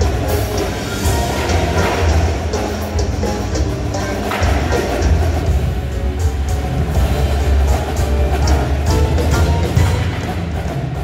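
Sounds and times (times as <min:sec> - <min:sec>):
heavy bass line: 0:00.0 - 0:11.0
percussion ensemble playing: 0:00.0 - 0:11.0.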